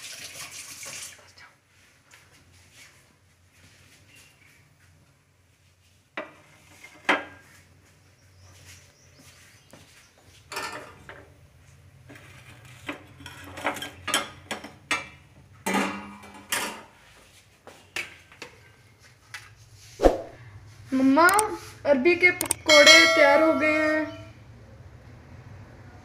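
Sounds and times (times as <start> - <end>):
dishes clinking and knocking: 10.5 - 11.3, 12.2 - 17.0.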